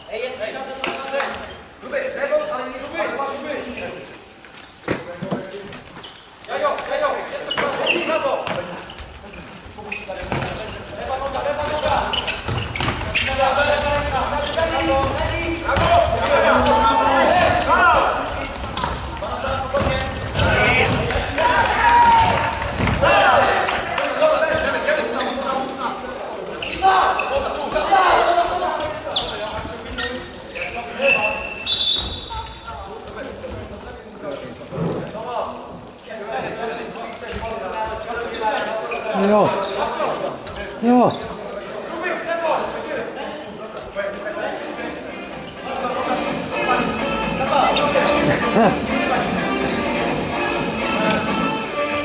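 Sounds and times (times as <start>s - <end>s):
players shouting in echoing hall: 6.6s - 33.6s.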